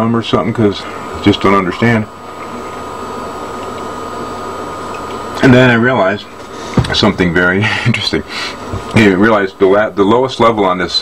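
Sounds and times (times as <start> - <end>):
low hum: 0.0 - 10.4
background hiss: 0.0 - 11.0
thin high whine: 0.0 - 11.0.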